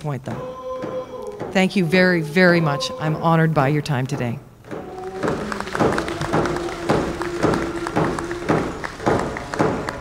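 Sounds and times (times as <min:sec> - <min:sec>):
frame drums beating: 0:00.2 - 0:10.0
person singing long note: 0:00.3 - 0:03.2, 0:04.8 - 0:08.8
applause: 0:04.9 - 0:10.0.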